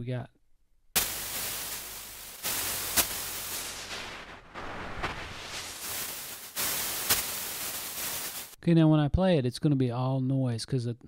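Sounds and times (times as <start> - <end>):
synthetic white noise hiss: 1.0 - 8.6.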